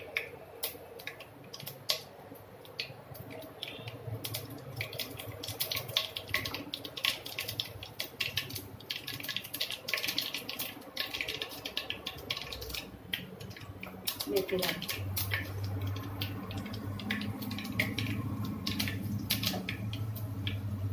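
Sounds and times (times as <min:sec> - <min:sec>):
seeds crackling in hot oil: 0:00.0 - 0:20.9.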